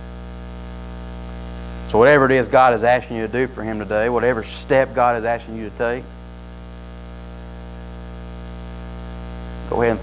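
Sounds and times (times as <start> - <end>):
electrical mains hum: 0.0 - 10.0
person speaking: 1.9 - 6.1, 9.6 - 10.0.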